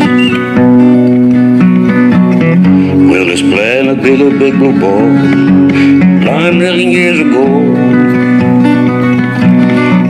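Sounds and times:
acoustic guitar playing: 0.0s - 10.0s
person singing: 2.9s - 8.2s.

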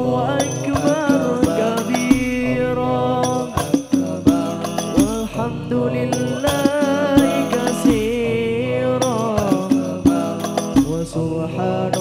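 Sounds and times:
group singing together: 0.0s - 12.0s.

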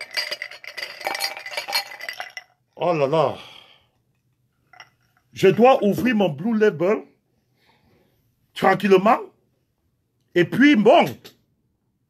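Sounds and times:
glass tumblers clinking: 0.0s - 2.6s, 4.6s - 5.5s.

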